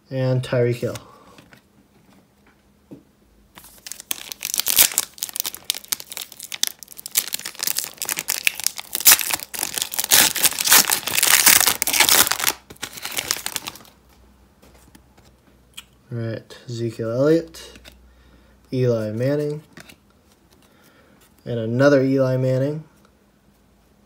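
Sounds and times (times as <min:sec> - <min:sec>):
foil wrapper crinkling and tearing: 0:03.6 - 0:13.9.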